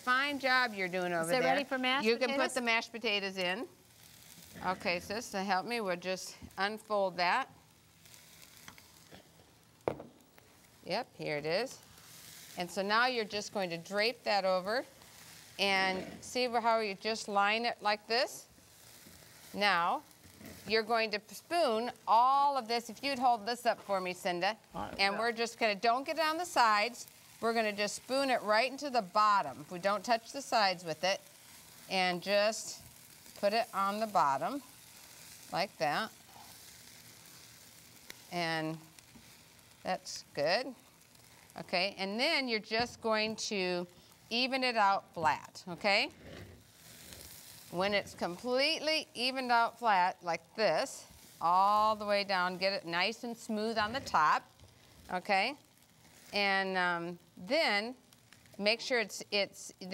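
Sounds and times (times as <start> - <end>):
faint steady hiss: 0.0 - 59.9.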